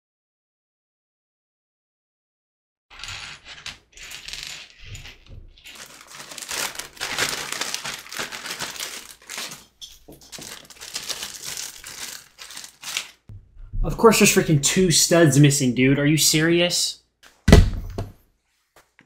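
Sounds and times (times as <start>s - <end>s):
plastic pieces clicking on a desk: 2.9s - 6.0s
plastic bag rustling: 2.9s - 13.3s.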